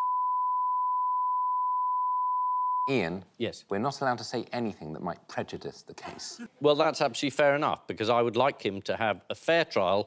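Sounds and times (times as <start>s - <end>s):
steady censor beep tone: 0.0s - 2.9s.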